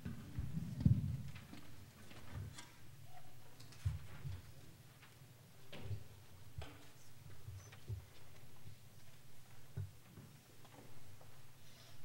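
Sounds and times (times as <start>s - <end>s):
small clicks and rustles: 0.8s - 2.8s, 3.5s - 11.5s.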